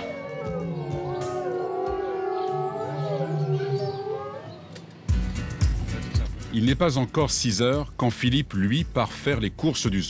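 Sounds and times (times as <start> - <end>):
animals howling: 0.0 - 5.1
background music: 0.0 - 10.0.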